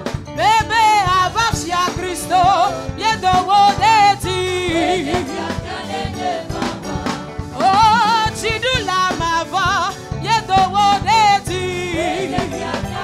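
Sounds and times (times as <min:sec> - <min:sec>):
band with keyboards guitar and drums: 0:00.0 - 0:13.0
woman singing with vibrato: 0:00.4 - 0:06.1, 0:07.5 - 0:13.0.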